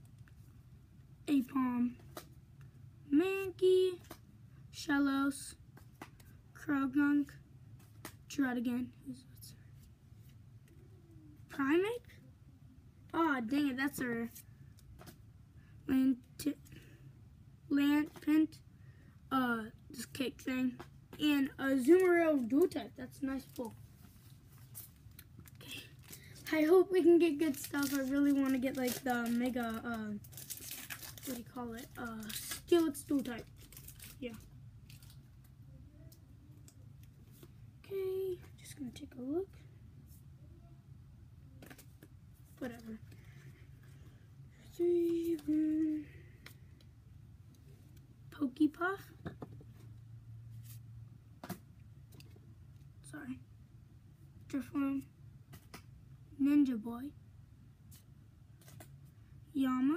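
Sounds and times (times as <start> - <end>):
low steady hum: 0.0 - 59.9
foil pack rustling: 27.3 - 35.1.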